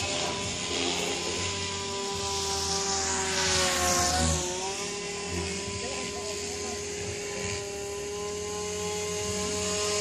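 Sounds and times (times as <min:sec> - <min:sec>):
helicopter rotor: 0:00.0 - 0:10.0
rc helicopter motor whine: 0:00.0 - 0:10.0.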